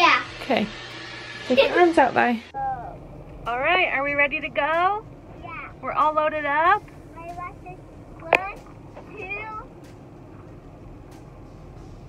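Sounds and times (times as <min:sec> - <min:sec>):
car cabin background: 0:02.5 - 0:12.0.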